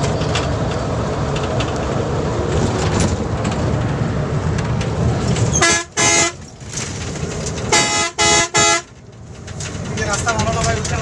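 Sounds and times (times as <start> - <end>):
bus engine and tyre rumble: 0.0 - 11.0
bus horn honking: 5.5 - 6.5, 7.6 - 9.0.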